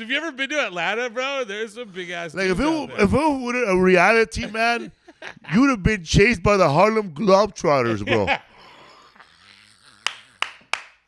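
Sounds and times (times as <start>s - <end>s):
man laughing: 2.0s - 5.8s, 7.8s - 8.7s
man clapping: 10.0s - 11.0s.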